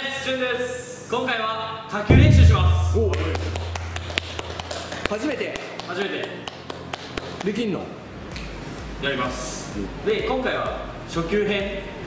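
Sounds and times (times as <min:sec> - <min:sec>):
low hum: 0:02.1 - 0:05.0.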